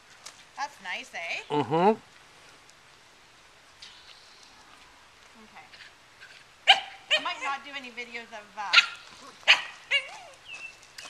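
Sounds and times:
puppy sharp high bark: 0:06.7 - 0:07.4, 0:08.7 - 0:10.1.

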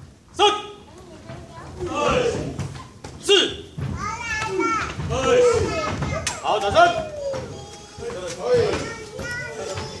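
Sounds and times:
children shouting: 0:04.0 - 0:10.0.

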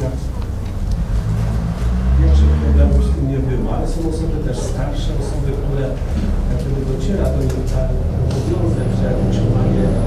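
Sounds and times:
man speaking into a microphone: 0:00.0 - 0:00.4, 0:02.1 - 0:10.0.

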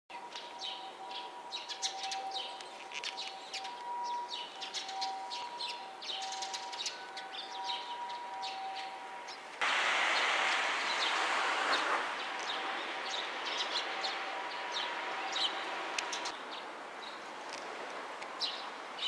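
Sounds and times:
sparrows chirping: 0:00.1 - 0:09.4, 0:10.2 - 0:17.2, 0:18.4 - 0:19.0
loud rushing noise: 0:09.6 - 0:16.2.

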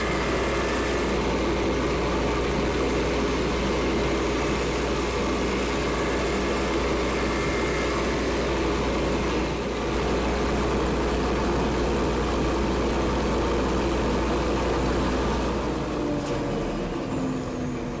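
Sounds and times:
turning tool cutting wood: 0:00.0 - 0:10.4
wood lathe running: 0:00.0 - 0:15.8.

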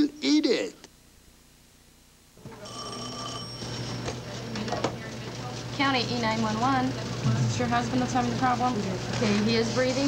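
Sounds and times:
telephone ringing: 0:02.4 - 0:04.4
busy office background noise: 0:02.4 - 0:10.0.

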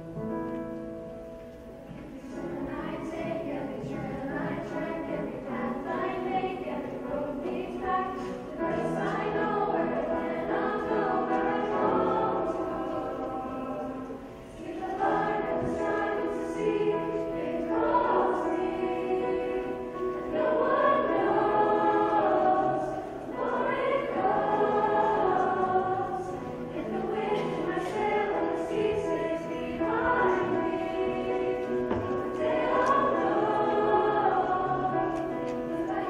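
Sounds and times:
choir singing: 0:02.0 - 0:36.0.

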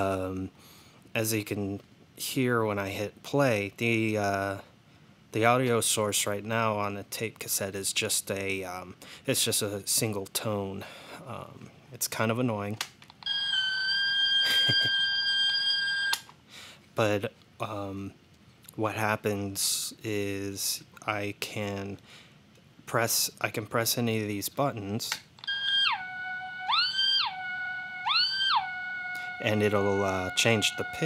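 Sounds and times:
high-pitched tape test tone: 0:25.4 - 0:31.0.

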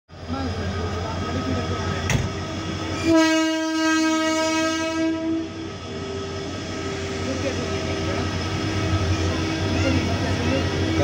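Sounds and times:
electric locomotive humming: 0:00.1 - 0:11.0
locomotive horn blast: 0:02.9 - 0:05.7.

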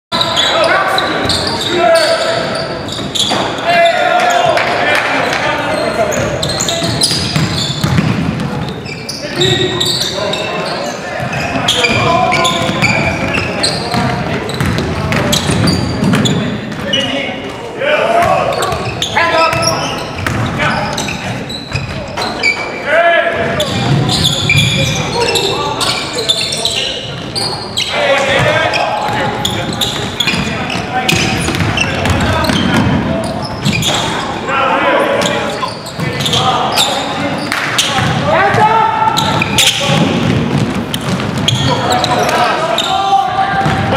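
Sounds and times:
shoe squeaks: 0:00.1 - 0:04.4, 0:05.2 - 0:17.2, 0:18.4 - 0:22.9, 0:23.6 - 0:38.1, 0:39.0 - 0:40.2, 0:40.9 - 0:43.2
players' voices: 0:00.1 - 0:43.9
basketball bouncing on wooden floor: 0:06.8 - 0:08.7, 0:12.5 - 0:16.8, 0:31.1 - 0:33.0, 0:39.1 - 0:41.7, 0:43.6 - 0:43.9
basketball bouncing on hardwood floor: 0:07.2 - 0:08.6, 0:13.9 - 0:16.8, 0:43.6 - 0:43.9.

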